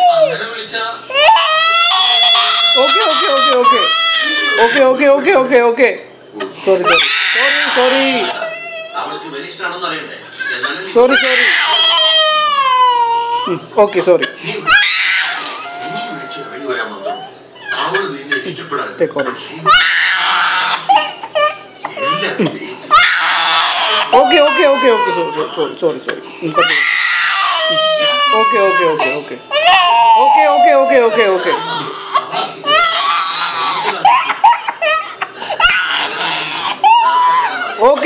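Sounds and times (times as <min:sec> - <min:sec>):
toddler crying: 0:01.1 - 0:05.0, 0:06.8 - 0:09.1, 0:10.4 - 0:13.6, 0:14.6 - 0:18.0, 0:19.7 - 0:25.7, 0:26.6 - 0:38.0.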